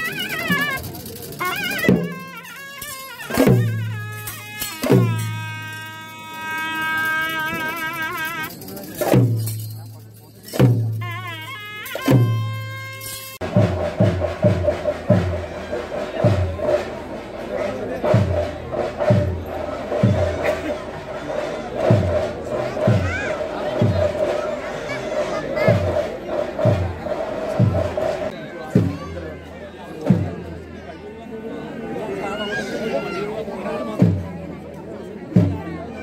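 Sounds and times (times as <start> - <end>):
music: 0.0 - 24.6
crowd voices: 0.0 - 36.0.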